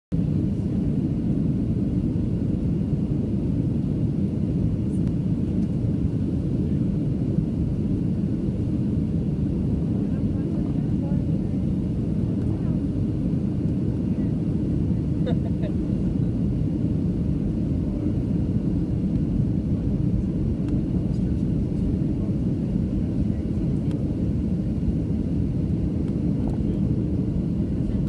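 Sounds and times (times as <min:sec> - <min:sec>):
airliner cabin rumble: 0:00.1 - 0:28.0.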